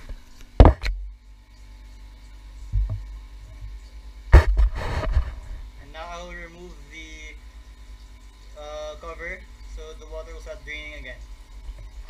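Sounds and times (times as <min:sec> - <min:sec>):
low thumps: 0:02.7 - 0:03.7, 0:04.3 - 0:05.8.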